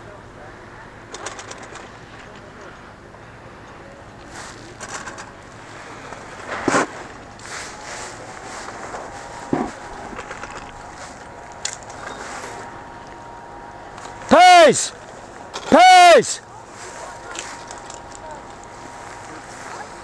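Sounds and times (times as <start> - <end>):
snowboard scraping over snow: 5.6 - 10.2.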